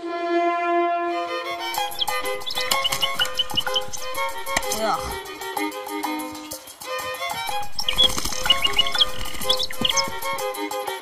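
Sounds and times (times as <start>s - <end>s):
background music: 0.0s - 11.0s
birds twittering: 1.7s - 5.2s, 6.1s - 10.7s.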